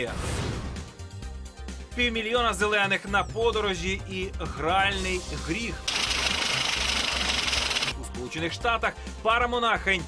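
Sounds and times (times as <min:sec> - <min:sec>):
banknote counting machine: 0:05.9 - 0:07.9.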